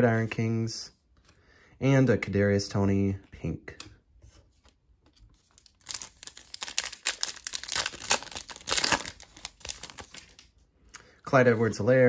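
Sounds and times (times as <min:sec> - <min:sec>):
foil wrapper tearing and crinkling: 0:05.5 - 0:10.4.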